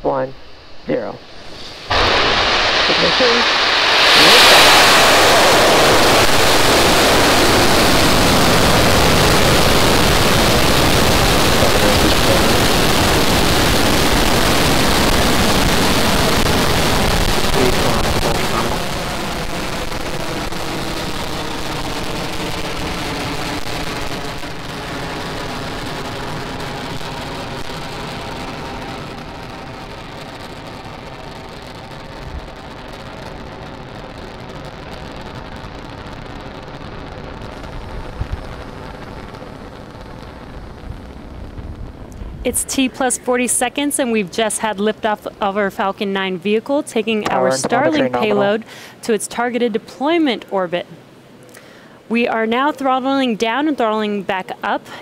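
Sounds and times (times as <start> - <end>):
rocket engines roaring: 0.0 - 36.1, 37.3 - 46.1, 47.1 - 48.7.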